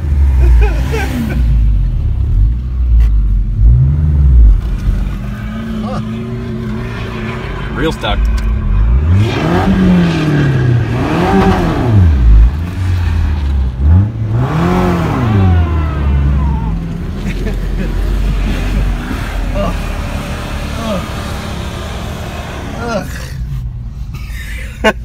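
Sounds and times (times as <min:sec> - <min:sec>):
truck engine revving: 0:03.5 - 0:23.6.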